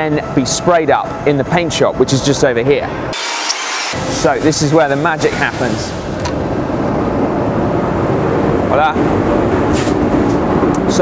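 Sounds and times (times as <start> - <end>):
ventilation air rushing: 0.0 - 11.0.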